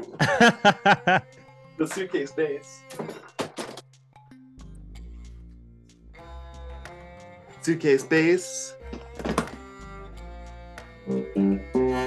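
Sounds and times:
thunk on bass instrument: 8.9s - 9.8s.

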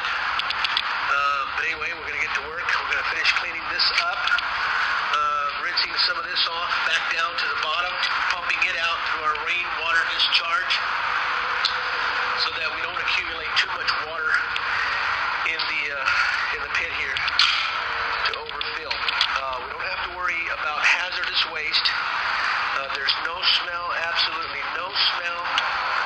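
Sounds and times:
indistinct voices talking: 0.0s - 26.0s.

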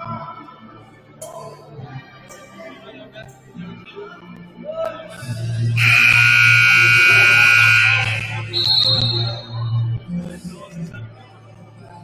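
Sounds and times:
scoreboard horn buzzing: 5.8s - 9.3s
shrill whistle-like tone: 5.8s - 9.7s.

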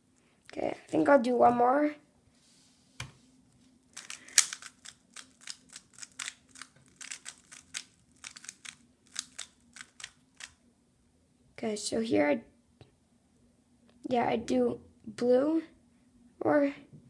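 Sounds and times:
puzzle cube plastic clicks: 4.0s - 10.6s.

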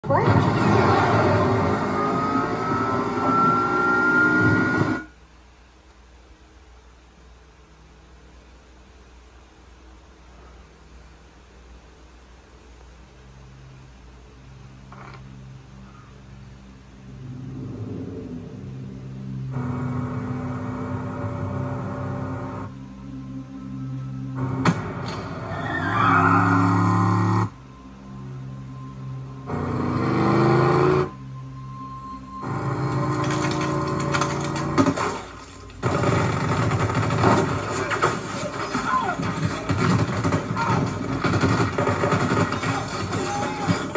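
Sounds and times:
car tyres squealing: 0.5s - 5.1s, 25.4s - 27.5s
low musical tone: 13.4s - 25.5s, 26.6s - 34.8s
film music: 15.5s - 43.9s
sports car engine roaring past: 29.5s - 31.2s.

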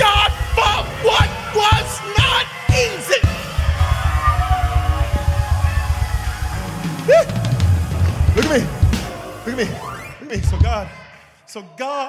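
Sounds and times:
drum and bass hits: 0.0s - 10.8s.

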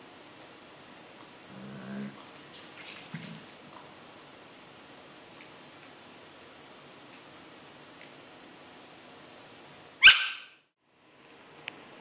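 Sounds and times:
dog barking: 10.0s - 10.6s.

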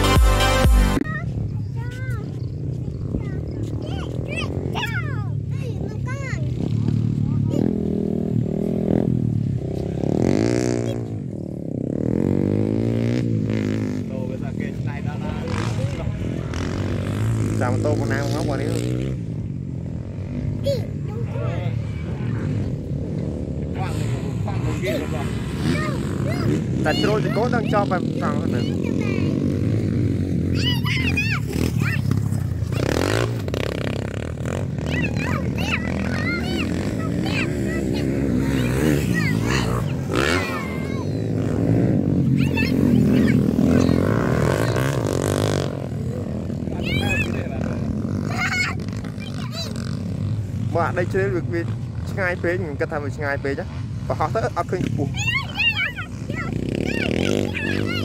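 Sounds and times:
dirt bike engine revving: 2.4s - 58.0s.

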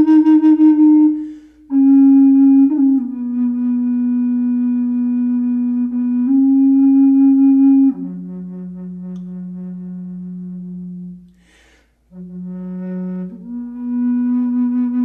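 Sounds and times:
bass flute playing slow melody: 0.0s - 15.0s.

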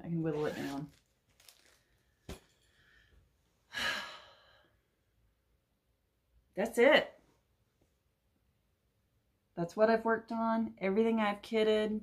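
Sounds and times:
breathy sigh: 2.8s - 4.8s.

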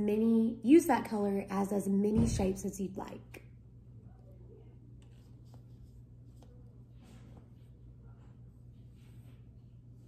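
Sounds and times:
paintbrush brushing on paper: 4.8s - 10.0s.

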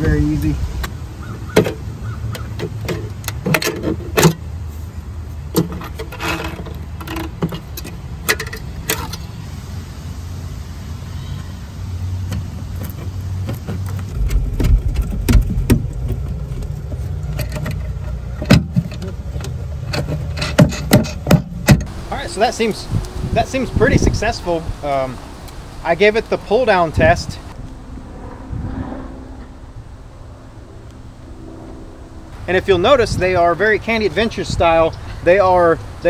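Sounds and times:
bolts and nuts clinking: 5.5s - 9.3s, 16.0s - 21.9s
low rumble: 14.1s - 17.5s, 27.0s - 32.8s.

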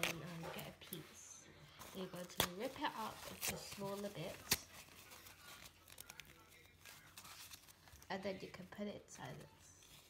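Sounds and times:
tissue paper tearing: 0.0s - 0.8s, 1.8s - 8.4s
soft crackles: 0.0s - 8.7s.

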